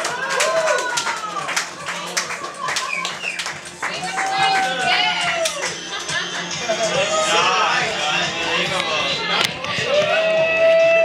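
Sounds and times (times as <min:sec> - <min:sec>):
crowd clapping: 0:00.0 - 0:06.5.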